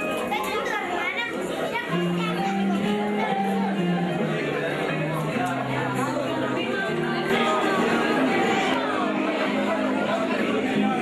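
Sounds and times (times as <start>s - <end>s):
crowd chattering: 0.0s - 11.0s
music with held notes: 0.0s - 11.0s.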